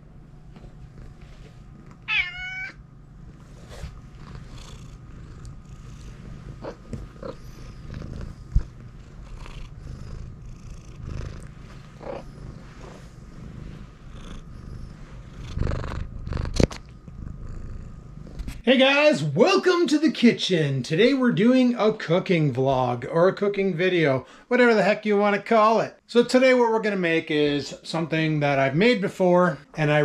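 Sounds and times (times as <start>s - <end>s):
cat purring: 0.4s - 18.6s
cat meowing: 2.0s - 2.8s.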